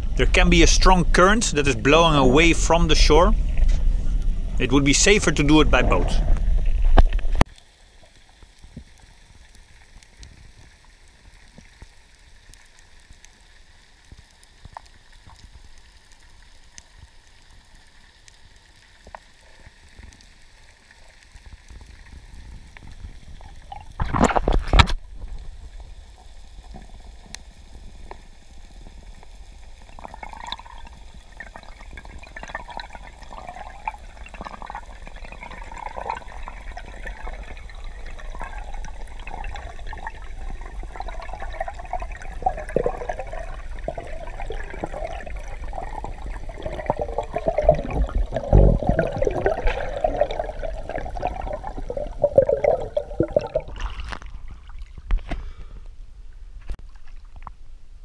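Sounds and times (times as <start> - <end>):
underwater water gurgling and rushing: 0.0 - 55.6.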